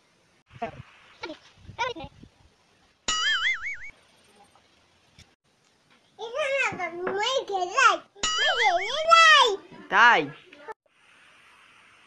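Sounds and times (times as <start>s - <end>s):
wobbling electronic tone: 3.1s - 3.9s, 8.2s - 9.1s.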